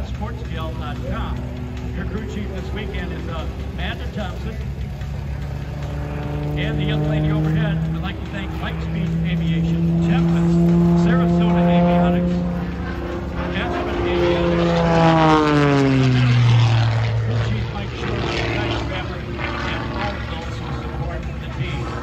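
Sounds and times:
propeller airplane flying past: 0.0s - 22.0s.

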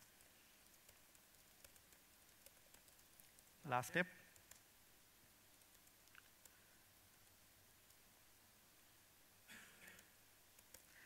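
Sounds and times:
laptop keyboard clicks: 0.0s - 3.5s, 9.9s - 10.9s.

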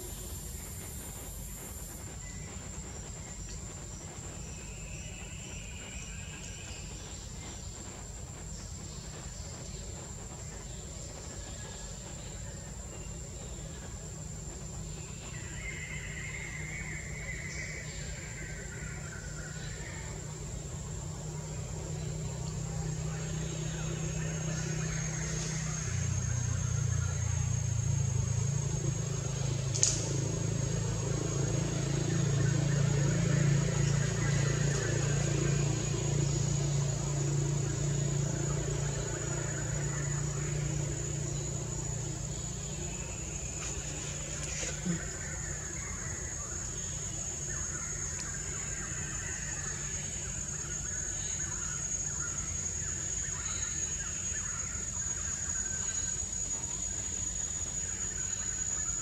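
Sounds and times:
low hum: 0.0s - 59.0s.

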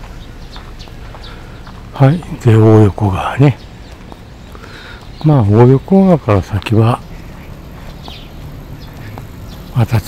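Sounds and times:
footsteps on pavement: 0.0s - 10.0s.

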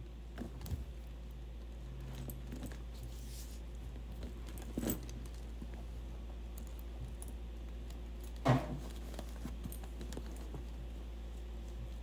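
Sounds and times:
steady low hum: 0.0s - 12.0s
chain clatter: 4.2s - 5.4s
metal chain and charms clinking: 4.4s - 5.4s.

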